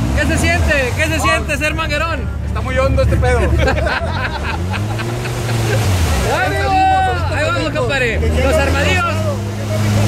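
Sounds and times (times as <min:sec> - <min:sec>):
utility vehicle engine droning: 0:00.0 - 0:10.0.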